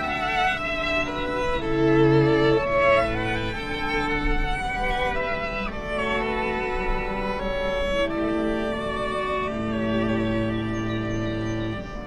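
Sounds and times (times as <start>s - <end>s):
string quartet playing: 0.0s - 12.0s.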